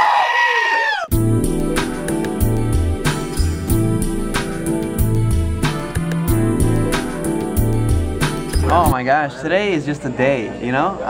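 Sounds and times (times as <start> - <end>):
music with bass line: 1.1 - 9.0.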